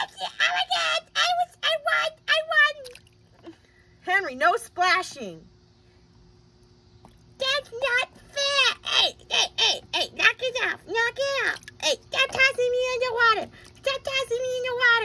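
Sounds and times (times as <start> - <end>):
high-pitched child-like voice: 0.0 - 3.0, 7.4 - 15.0.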